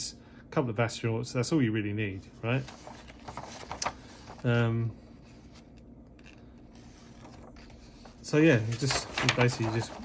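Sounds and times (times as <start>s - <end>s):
low room hum: 0.0s - 10.0s
paper pages rustling: 2.4s - 10.0s.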